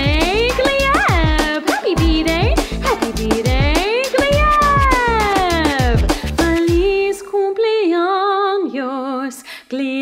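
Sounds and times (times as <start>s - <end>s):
birthday tune instrumental backing: 0.0s - 7.1s.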